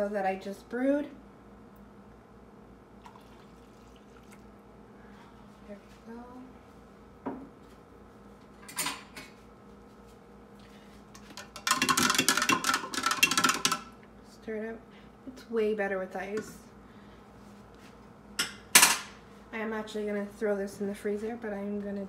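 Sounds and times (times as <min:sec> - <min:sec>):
spoon stirring in plastic tumbler: 0:11.2 - 0:13.9.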